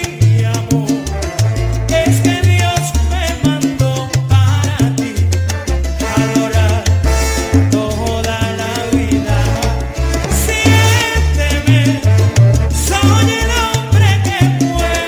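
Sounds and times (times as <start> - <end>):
instrumental salsa music: 0.0 - 15.0.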